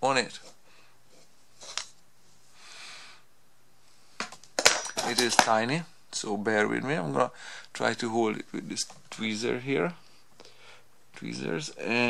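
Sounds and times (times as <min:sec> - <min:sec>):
faint hiss: 0:00.0 - 0:04.6, 0:05.3 - 0:12.0.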